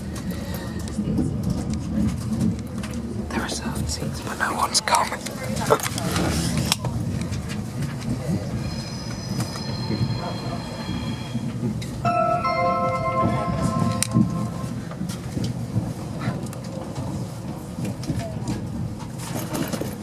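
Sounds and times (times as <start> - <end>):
train wheels rumbling on rail: 0.0 - 12.0, 13.0 - 20.0.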